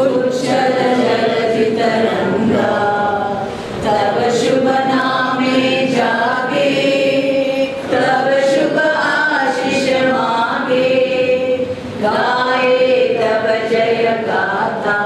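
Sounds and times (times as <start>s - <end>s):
group of voices singing: 0.0s - 15.0s.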